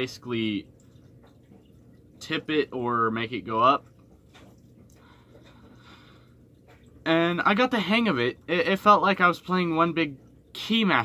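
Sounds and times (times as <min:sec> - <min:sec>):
steady low hum: 0:00.0 - 0:11.0
soft breathing: 0:04.8 - 0:06.9.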